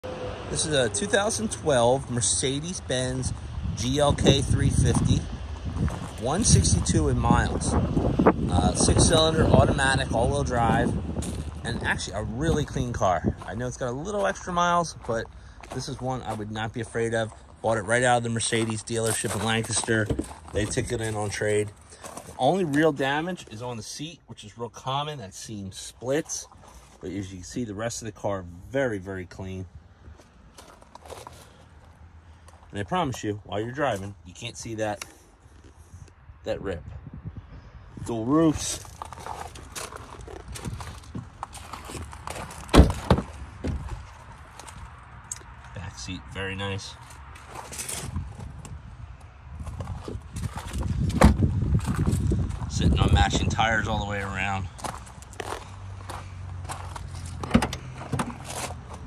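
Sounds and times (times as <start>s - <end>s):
crunches on gravel: 9.5s - 23.8s, 30.1s - 36.0s, 38.0s - 59.0s.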